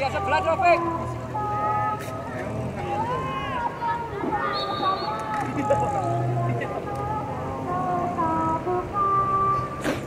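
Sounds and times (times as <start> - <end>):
voices shouting and calling: 0.0 - 10.0.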